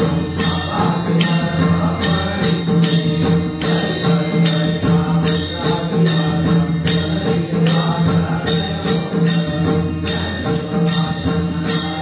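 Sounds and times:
hand cymbals clashing: 0:00.0 - 0:12.0
two-headed drum: 0:00.0 - 0:12.0.

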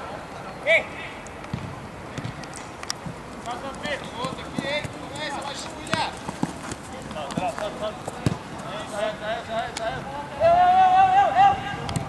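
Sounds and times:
ball being kicked: 0:01.5 - 0:03.2, 0:04.0 - 0:08.5
running feet: 0:01.6 - 0:10.0
players shouting: 0:03.5 - 0:12.0.

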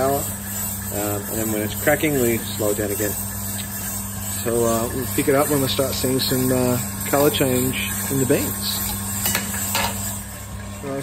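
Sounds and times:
roaster motor humming: 0:00.0 - 0:11.0.

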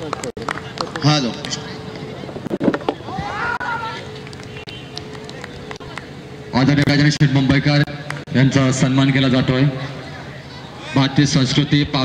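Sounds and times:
faint indistinct voices: 0:00.0 - 0:06.6, 0:08.2 - 0:11.9
steady low hum: 0:00.0 - 0:12.0.

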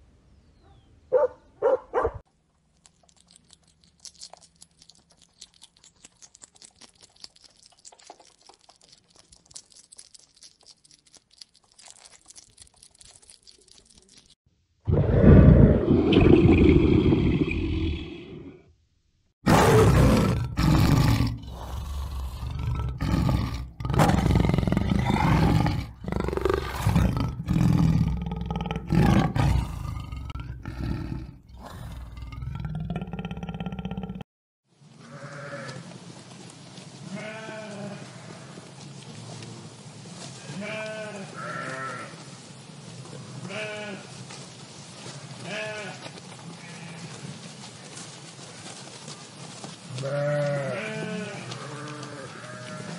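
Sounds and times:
hedgehog clicking and rustling: 0:02.5 - 0:14.4
tiger growls and roars: 0:14.9 - 0:18.6, 0:19.4 - 0:34.2
sheep bleating: 0:37.1 - 0:38.5, 0:40.5 - 0:42.1, 0:43.5 - 0:44.1, 0:45.4 - 0:46.0, 0:50.0 - 0:52.9.

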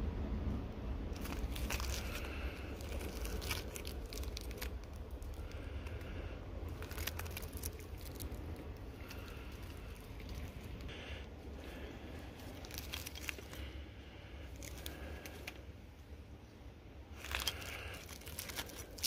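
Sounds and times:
low rumble: 0:00.0 - 0:19.0
gloves handling rocks: 0:01.2 - 0:15.8, 0:17.1 - 0:19.0.

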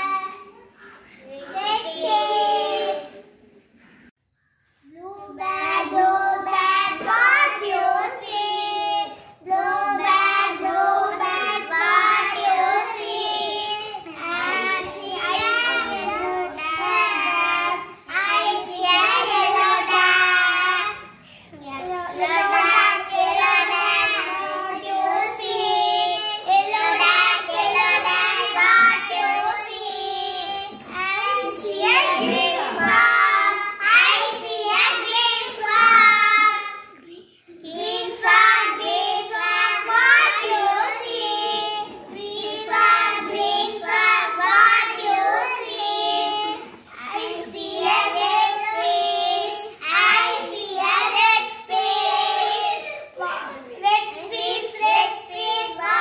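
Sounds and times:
girls singing together: 0:00.0 - 0:04.0, 0:04.9 - 0:56.0.

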